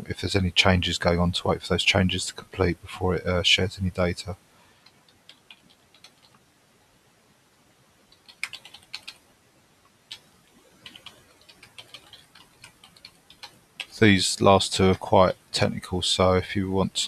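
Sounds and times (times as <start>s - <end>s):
keyboard typing: 4.8s - 6.4s, 8.1s - 9.2s, 10.1s - 14.0s.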